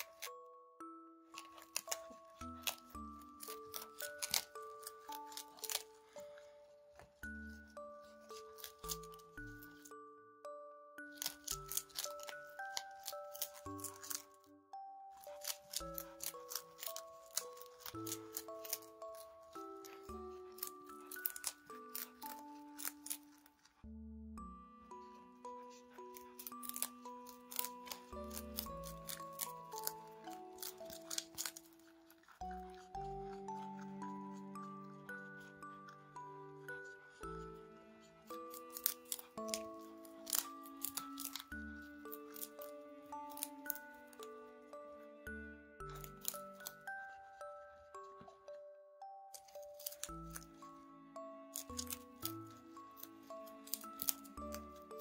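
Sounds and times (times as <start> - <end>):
rabbit crunching cabbage: 0.0 - 0.4, 1.3 - 9.9, 11.0 - 14.5, 15.1 - 23.8, 25.0 - 44.4, 45.8 - 48.4, 49.3 - 55.0
soft instrumental music: 0.0 - 55.0.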